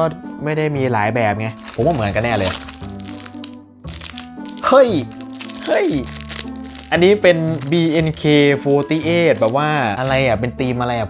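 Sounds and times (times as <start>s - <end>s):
background music: 0.0s - 11.0s
plastic packaging crinkling: 1.6s - 10.3s.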